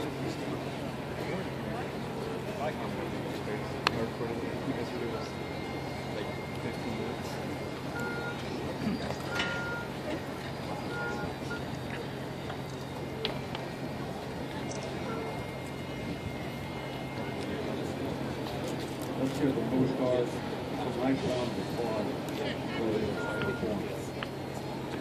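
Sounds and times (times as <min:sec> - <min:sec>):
crowd murmuring: 0:00.0 - 0:25.0
distant traffic hum: 0:00.0 - 0:25.0.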